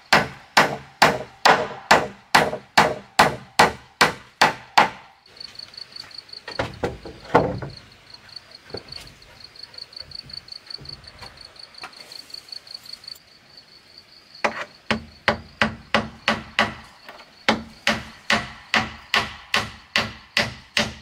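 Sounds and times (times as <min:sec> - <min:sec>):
hammer striking nail into wood: 0:00.1 - 0:05.1, 0:14.5 - 0:16.8, 0:17.5 - 0:21.0.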